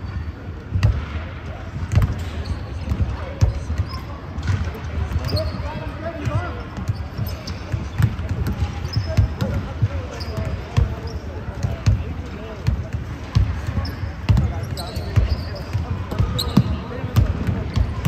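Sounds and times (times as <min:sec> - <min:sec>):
sneaker squeaks: 0:00.0 - 0:00.6, 0:01.9 - 0:18.0
players' voices: 0:00.0 - 0:18.0.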